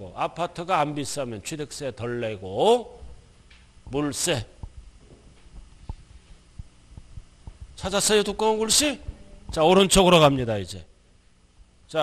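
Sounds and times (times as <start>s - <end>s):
man speaking: 0.0s - 3.1s, 3.9s - 4.6s, 7.8s - 10.9s
faint steady hum: 0.0s - 12.0s
microphone handling thumps: 4.6s - 7.9s.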